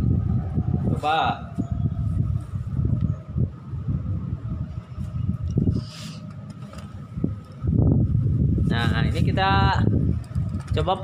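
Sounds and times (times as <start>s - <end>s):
wind on camera microphone: 0.0s - 11.0s.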